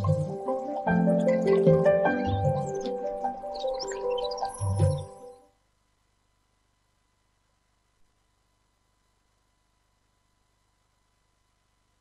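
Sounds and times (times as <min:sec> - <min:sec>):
faint background hiss: 0:00.0 - 0:12.0
faint hum: 0:00.0 - 0:12.0.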